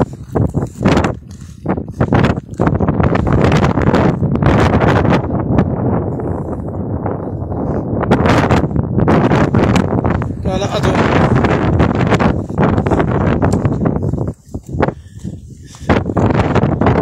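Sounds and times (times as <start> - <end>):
footsteps crunching on stony ground: 0.0 - 3.9, 10.0 - 17.0
wind buffeting microphone: 0.0 - 17.0.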